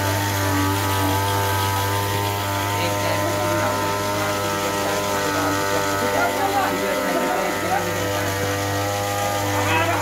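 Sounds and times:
engine running steadily: 0:00.0 - 0:10.0
faint voices: 0:00.2 - 0:10.0.

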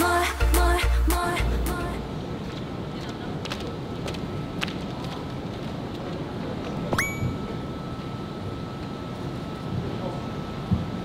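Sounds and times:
faint steady high tone: 0:06.9 - 0:09.2.

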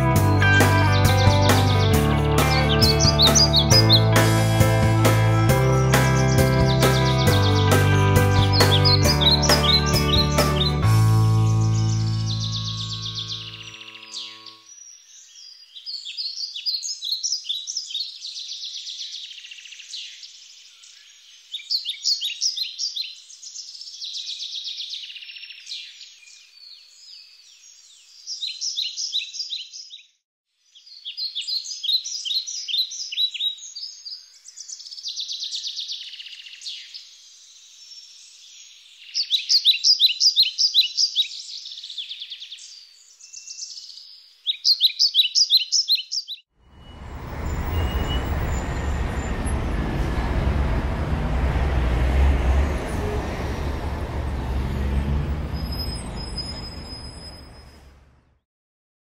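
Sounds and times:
city street traffic: 0:00.0 - 0:13.7, 0:46.6 - 0:58.4
songbirds trilling: 0:00.6 - 0:04.4, 0:05.7 - 0:30.1, 0:30.7 - 0:57.4.

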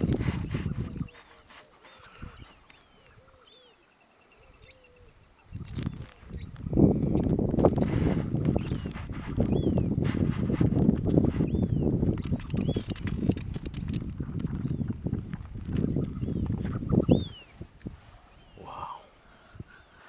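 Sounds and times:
small birds chirping: 0:00.0 - 0:10.0, 0:11.0 - 0:20.0.

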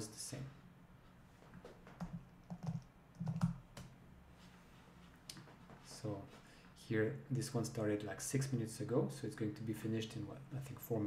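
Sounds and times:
keyboard typing: 0:01.9 - 0:03.9.

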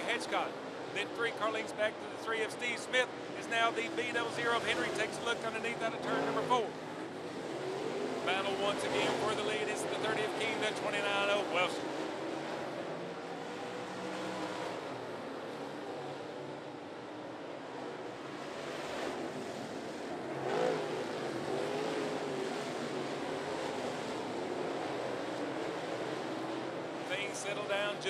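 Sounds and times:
race car engines: 0:00.0 - 0:28.0
race car passing close: 0:00.0 - 0:28.0.

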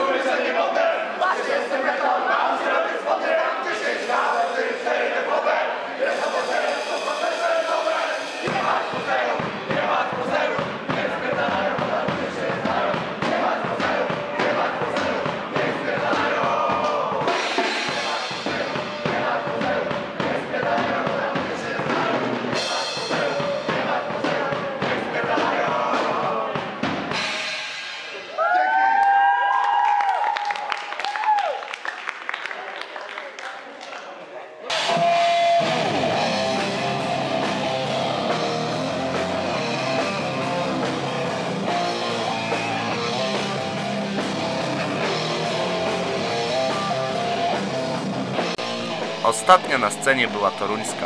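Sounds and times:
pounding drums and cymbal crashes: 0:06.2 - 0:28.2
audience shouting and cheering: 0:28.2 - 0:31.7, 0:49.0 - 0:51.0
audience clapping: 0:29.0 - 0:34.2, 0:49.2 - 0:51.0
heavy metal band playing live: 0:34.9 - 0:49.3.

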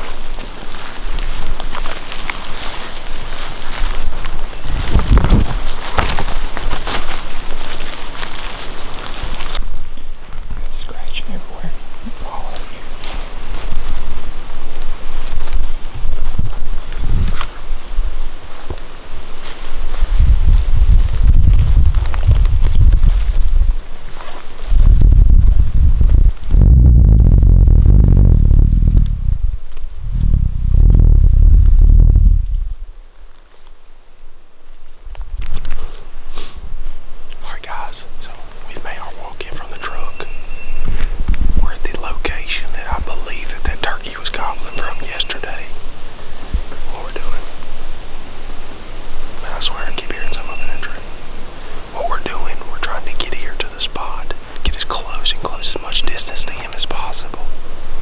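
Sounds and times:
wind rumble on microphone: 0:00.0 - 0:58.0
man whispering: 0:10.6 - 0:13.3, 0:37.3 - 0:40.4, 0:41.6 - 0:45.8, 0:46.8 - 0:47.6, 0:49.4 - 0:51.1, 0:51.9 - 0:57.6.

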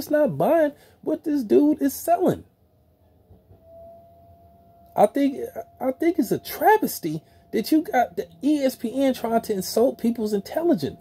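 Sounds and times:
man speaking: 0:00.0 - 0:02.5, 0:05.0 - 0:11.0
faint electronic hum tone: 0:00.0 - 0:11.0.

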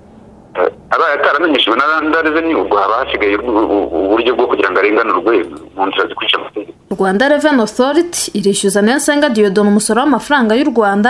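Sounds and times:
person speaking: 0:00.6 - 0:06.9.

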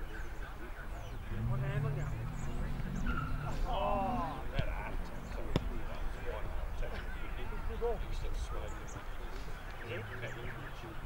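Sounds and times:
distant voices calling out: 0:00.0 - 0:11.0
drawn-out shout: 0:01.3 - 0:05.3.

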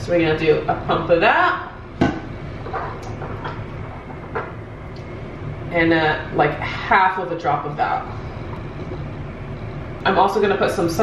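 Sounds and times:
air vent humming: 0:00.0 - 0:11.0.

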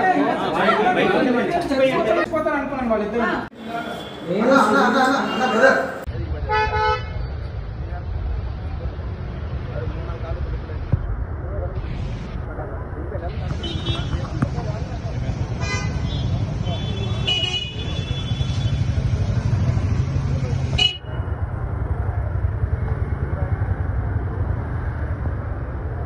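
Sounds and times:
traffic rumble: 0:00.0 - 0:26.0
car horn: 0:03.7 - 0:04.6, 0:05.2 - 0:07.4, 0:13.5 - 0:14.4, 0:15.6 - 0:19.0, 0:20.7 - 0:21.2.

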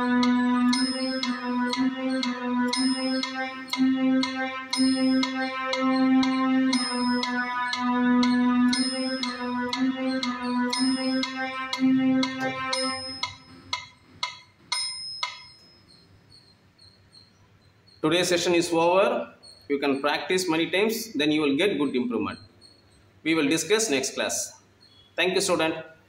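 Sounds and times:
electronic keyboard slow melody: 0:00.0 - 0:15.6
metronome clicking: 0:00.0 - 0:16.0
metronome bell: 0:00.0 - 0:16.1.

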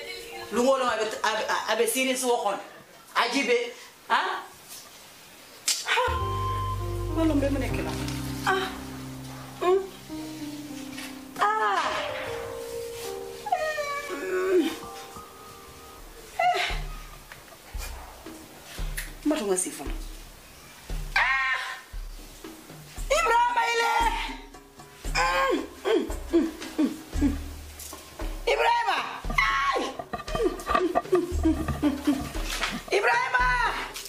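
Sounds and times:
music with low held notes: 0:06.1 - 0:34.0
woman moaning in pain: 0:13.8 - 0:14.9, 0:25.1 - 0:27.4.

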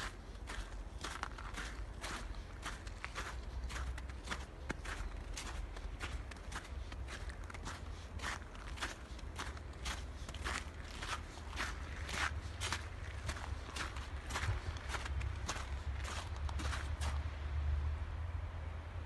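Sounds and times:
footsteps crunching through snow: 0:00.0 - 0:17.3
steady low rumble: 0:00.0 - 0:19.0.

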